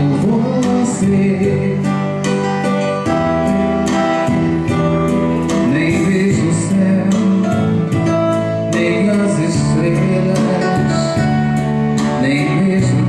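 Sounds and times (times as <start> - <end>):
man singing into microphone: 0.0 - 2.5, 5.5 - 13.0
music with steady beat: 0.0 - 13.0.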